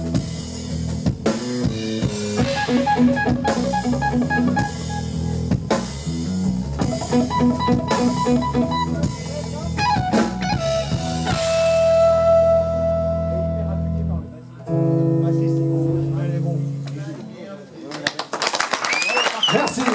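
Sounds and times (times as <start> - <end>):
live rock band: 0.0 - 19.9
audience applause and cheering: 17.9 - 19.9
whistle from audience: 18.8 - 19.9.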